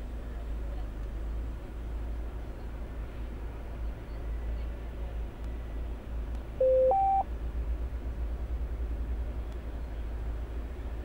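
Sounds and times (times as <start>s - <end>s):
two-note electronic beep: 6.6s - 7.2s.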